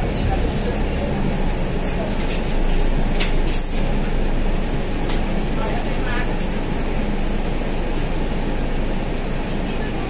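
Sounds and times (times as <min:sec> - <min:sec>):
bus engine rumbling: 0:00.0 - 0:10.0.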